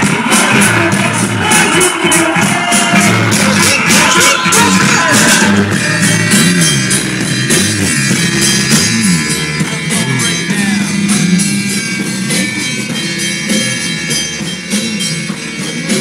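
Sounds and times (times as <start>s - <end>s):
dance music with drum beat: 0.0s - 16.0s.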